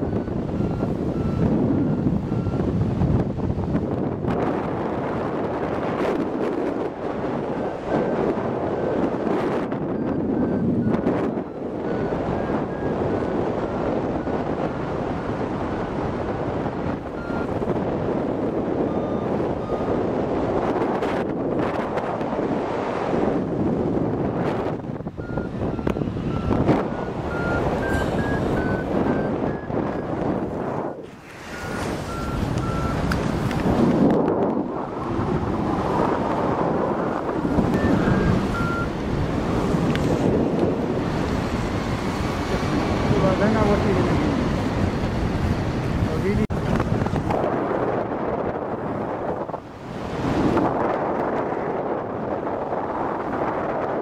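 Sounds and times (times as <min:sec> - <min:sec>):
variometer beeping: 0:00.0 - 0:02.8, 0:07.6 - 0:13.4, 0:16.9 - 0:17.8, 0:18.7 - 0:20.1, 0:24.5 - 0:30.9, 0:31.5 - 0:33.6, 0:36.8 - 0:42.0
wind rushing over microphone: 0:00.0 - 0:54.0.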